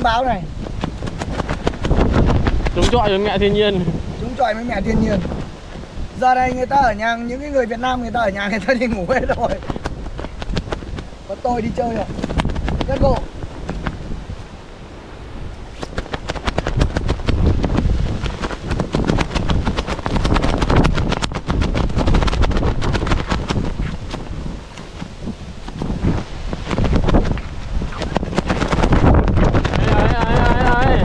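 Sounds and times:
gusty wind buffeting microphone: 0.0s - 31.0s.

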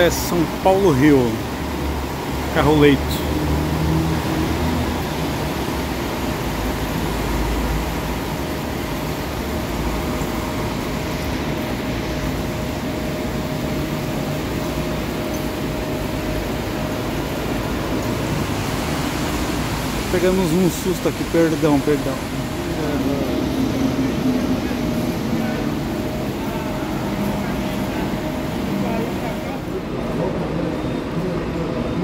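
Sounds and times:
diesel bus engines rumbling: 0.0s - 32.0s
faint steady whine: 5.0s - 32.0s.

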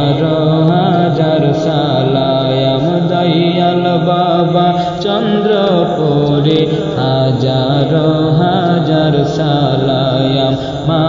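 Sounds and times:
chanted vocal notes: 0.0s - 11.0s.

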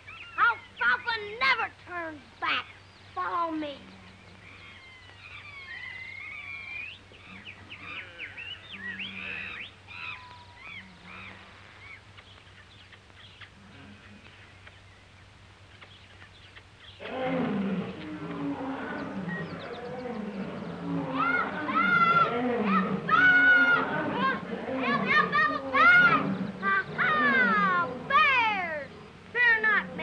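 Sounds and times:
birds chirping and whistling: 0.0s - 1.6s, 2.3s - 13.6s, 14.2s - 29.8s
faint steady hum: 0.0s - 30.0s
animal roaring and growling: 17.0s - 30.0s.

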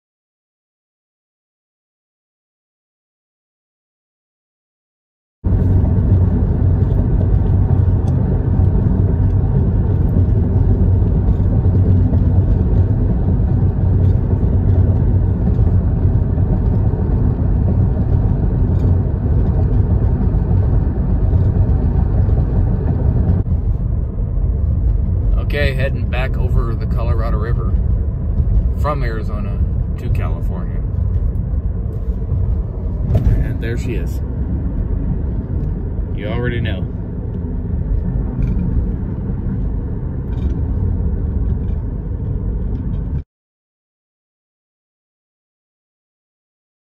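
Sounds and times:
car road and engine rumble: 5.4s - 43.2s.

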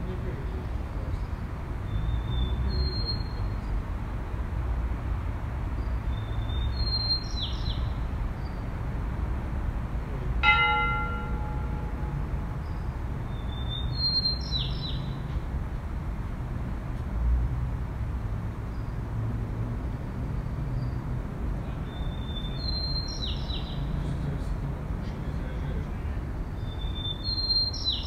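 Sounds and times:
bell ringing: 10.4s - 12.2s.

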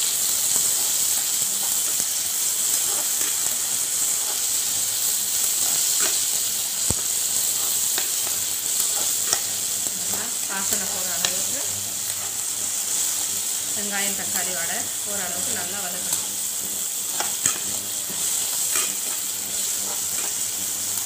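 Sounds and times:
vegetables sizzling in oil: 0.0s - 21.0s
spatula scraping a pan: 0.6s - 13.3s, 15.9s - 21.0s.

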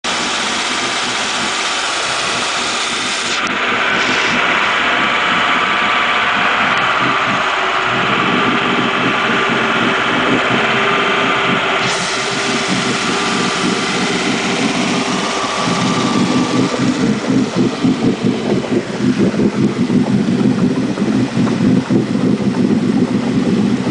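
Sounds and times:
boat engine idling: 0.0s - 23.9s.

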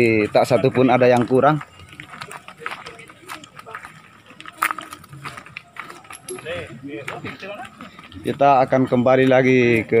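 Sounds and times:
faint voices: 0.0s - 10.0s
footsteps on stony dirt trail: 0.0s - 10.0s.

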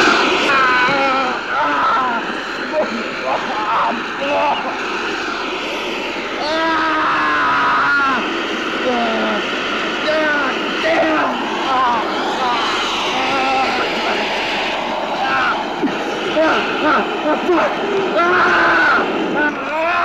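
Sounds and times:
steady rushing hiss: 0.0s - 20.0s
man crying out: 0.5s - 4.7s, 6.4s - 14.3s, 15.2s - 15.7s, 16.3s - 20.0s.

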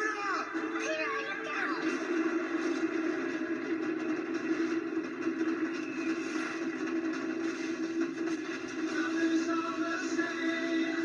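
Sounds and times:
trailer music from television speaker: 0.0s - 11.0s.

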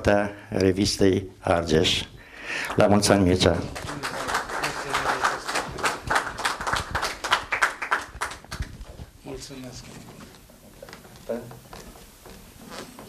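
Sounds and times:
small audience applause: 2.6s - 8.8s.

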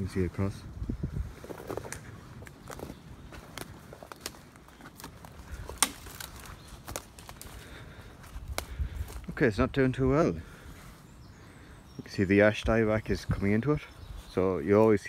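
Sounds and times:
footsteps on forest floor: 0.8s - 9.5s, 13.2s - 15.0s
twigs snapping underfoot: 1.4s - 9.4s.

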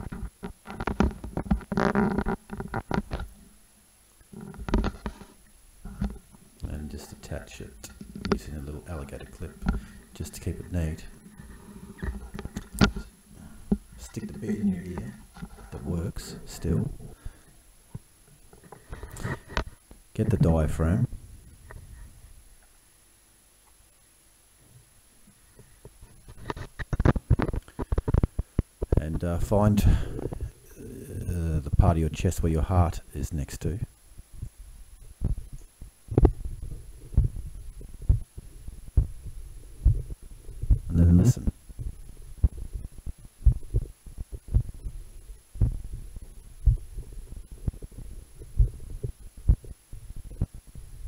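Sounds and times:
light rubbing on tubing: 0.0s - 3.2s
heartbeat thumps: 34.4s - 51.0s.

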